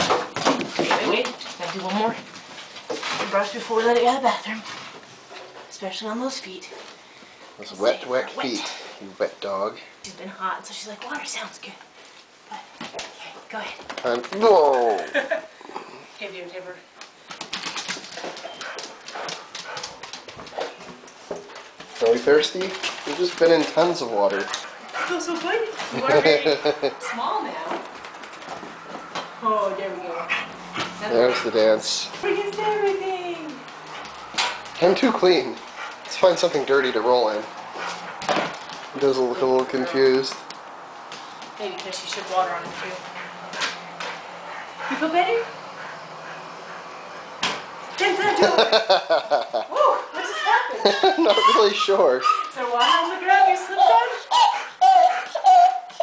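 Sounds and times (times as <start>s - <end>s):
dog claws clicking on wood floor: 12.8s - 15.3s, 17.0s - 26.0s, 27.6s - 29.3s, 37.4s - 42.8s.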